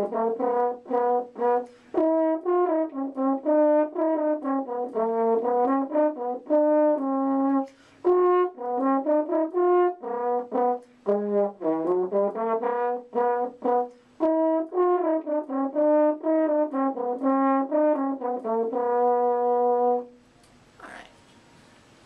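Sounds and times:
french horn melody: 0.0 - 20.3.

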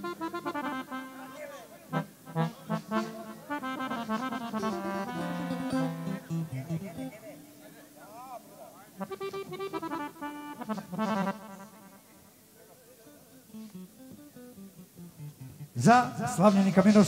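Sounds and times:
accordion playing quick runs: 0.0 - 7.5, 9.0 - 12.0.

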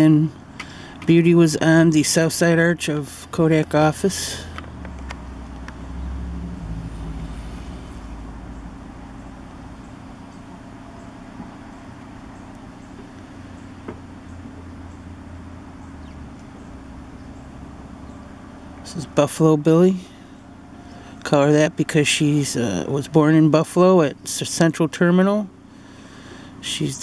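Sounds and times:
traffic engine rumble: 0.0 - 27.0.

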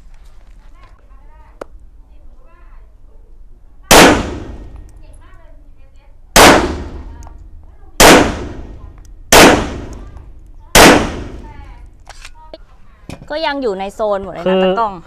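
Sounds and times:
pistol shots with echo: 3.9 - 4.8, 6.4 - 7.3, 8.0 - 11.6.

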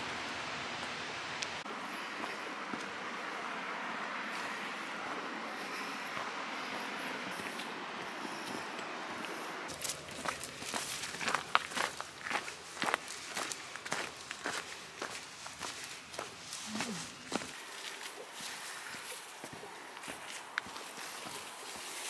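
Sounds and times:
boots crunching over gravel: 9.3 - 22.0.

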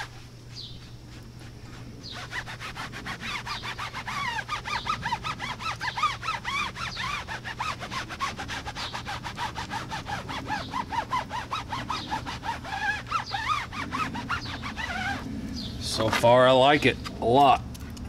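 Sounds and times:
foam pad squeaking on tire: 0.0 - 16.3.

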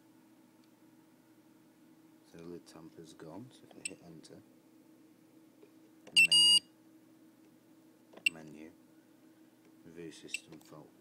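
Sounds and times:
alarm keypad beeping: 6.2 - 6.6.

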